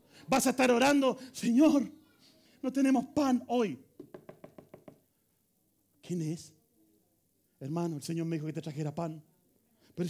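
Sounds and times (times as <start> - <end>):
knuckles knocking on hard surface: 4.0 - 5.0.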